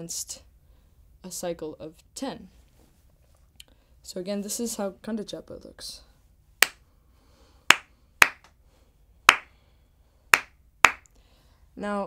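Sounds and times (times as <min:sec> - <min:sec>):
hand claps: 0:07.7 - 0:08.5, 0:09.3 - 0:09.5, 0:10.4 - 0:11.1.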